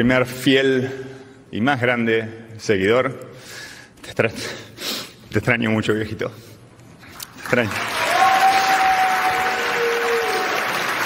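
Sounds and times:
audience applauding: 7.4s - 11.0s.

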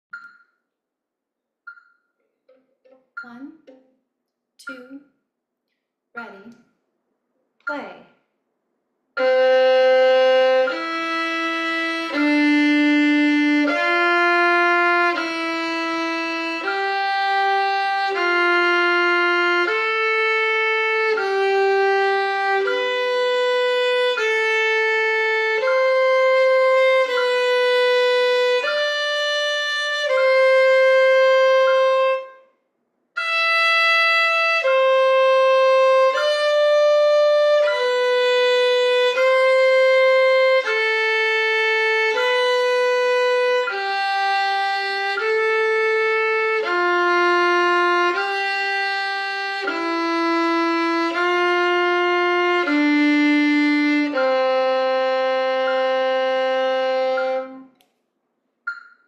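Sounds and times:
solo violin long bowed notes: 9.2s - 32.5s, 33.2s - 57.8s.

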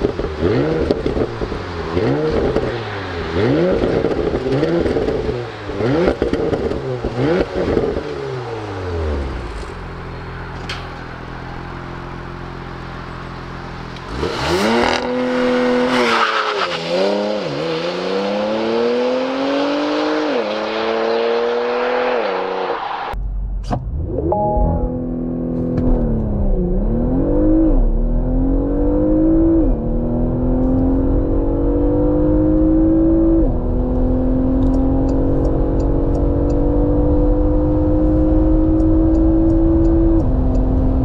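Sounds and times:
car engine revving and idling: 0.0s - 41.0s
car accelerating through gear shifts: 24.1s - 41.0s.

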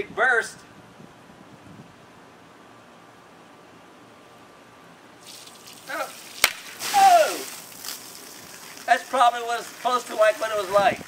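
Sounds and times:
water running into balloon: 5.2s - 11.0s
water spraying hiss: 5.2s - 11.0s.

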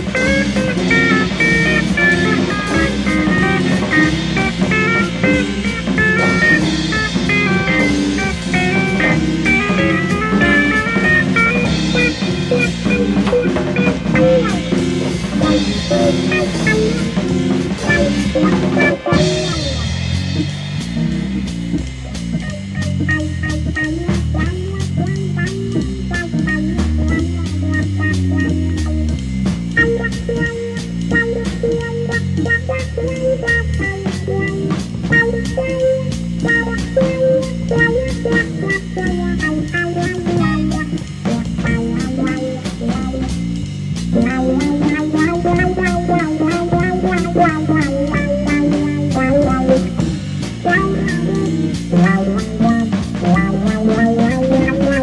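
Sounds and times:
instrumental psychedelic rock: 0.0s - 55.0s.

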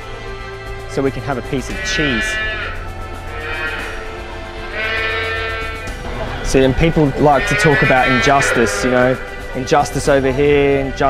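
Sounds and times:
background music: 0.0s - 11.0s
calf bawling: 1.6s - 10.2s.

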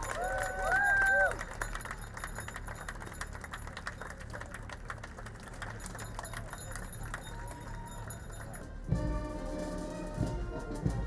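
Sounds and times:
loud cheering shout: 0.0s - 1.5s.

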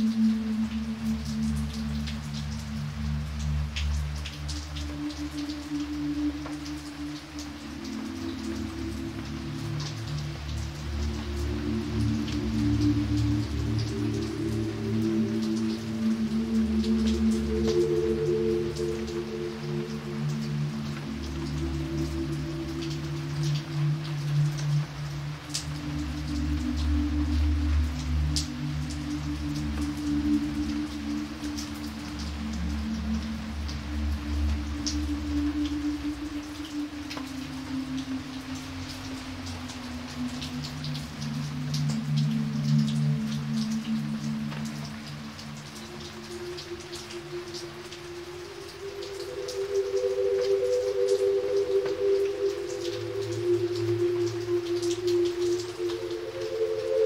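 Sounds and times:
rain splashing on pavement: 0.0s - 57.0s
slow low music chords: 0.0s - 57.0s.

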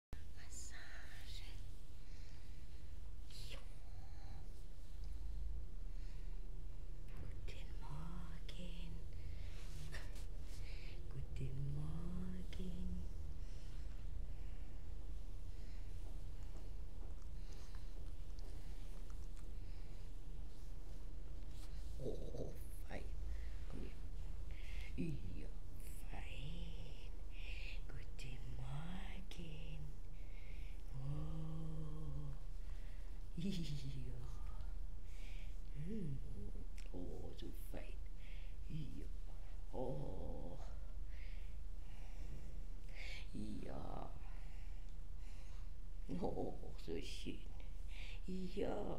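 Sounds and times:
person whispering: 0.2s - 1.8s, 3.2s - 4.8s, 7.1s - 13.4s, 21.5s - 30.1s, 30.8s - 32.7s, 33.3s - 34.8s, 35.5s - 40.9s, 42.9s - 44.4s, 46.1s - 48.9s
steady low hum: 0.2s - 48.9s.

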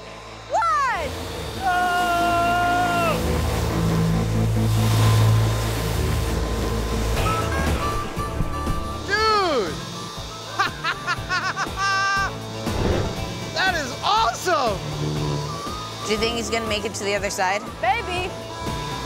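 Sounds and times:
background music: 0.0s - 19.0s
person shouting: 0.5s - 3.2s
person whooping and laughing: 1.6s - 3.2s, 10.5s - 12.4s.

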